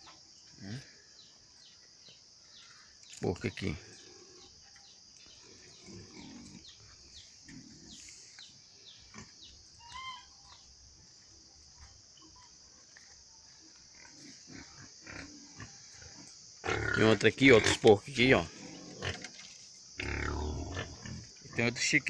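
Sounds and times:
high insect drone: 0.0s - 22.0s
pigs grunting: 5.4s - 8.2s, 13.9s - 21.8s.

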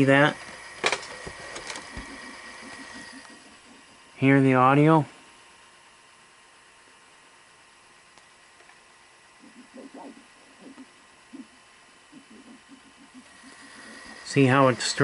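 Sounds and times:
slow low-pitched tape playback: 0.0s - 15.0s.

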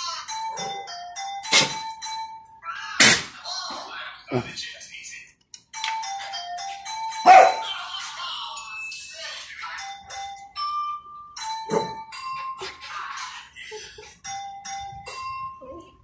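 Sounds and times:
dog barking: 7.3s - 7.6s.

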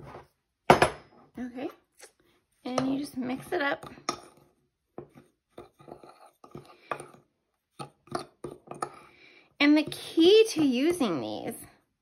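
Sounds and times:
metal spoon scraping in a bowl: 2.8s - 7.2s.

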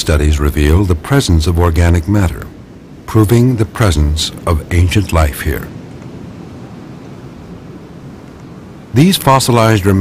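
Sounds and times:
soft wind rush: 0.0s - 10.0s.

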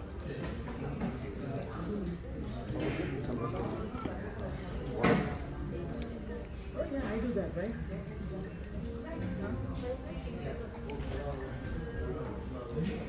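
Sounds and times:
diners chattering: 0.0s - 13.0s.

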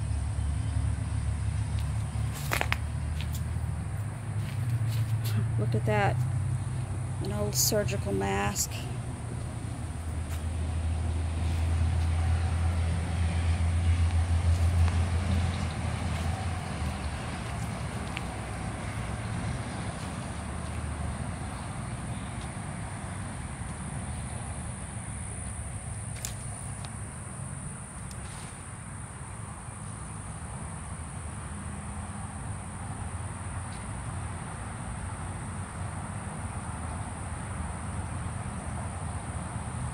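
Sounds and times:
background hum: 0.0s - 39.9s
passing traffic rumble: 0.0s - 39.9s.

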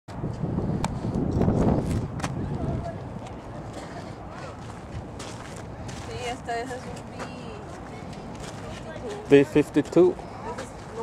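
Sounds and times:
wind buffeting microphone: 0.1s - 11.0s.

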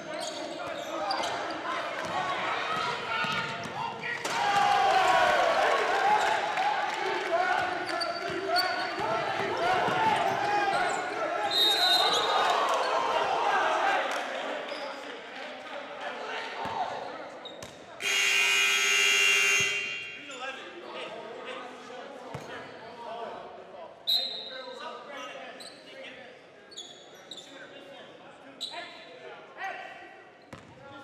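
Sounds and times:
crowd cheering and shouting: 4.2s - 14.5s
referee's whistle: 11.4s - 12.4s, 18.0s - 20.4s, 24.0s - 24.7s
scoreboard horn blast: 18.0s - 20.2s.

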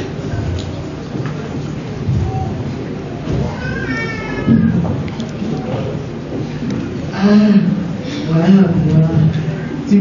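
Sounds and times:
low background murmur: 0.0s - 10.0s.

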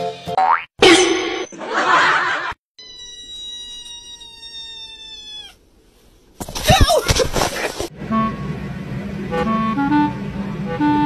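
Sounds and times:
kitten meowing: 2.8s - 5.6s
music with low drone: 7.9s - 11.0s.

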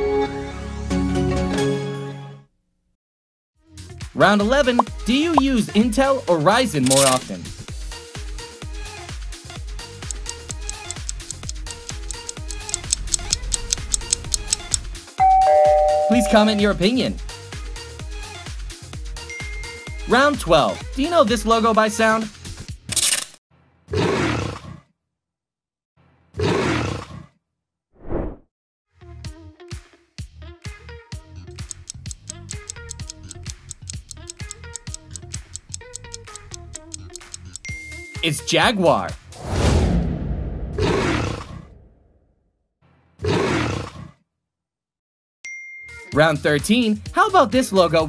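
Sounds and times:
growl: 23.9s - 24.9s, 26.4s - 27.4s, 40.8s - 41.9s, 43.2s - 44.2s
short sharp swish: 28.0s - 28.4s.

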